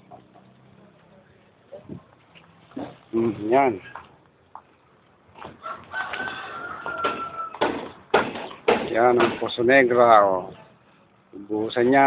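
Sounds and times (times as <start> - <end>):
rooster crowing: 5.6 - 7.8.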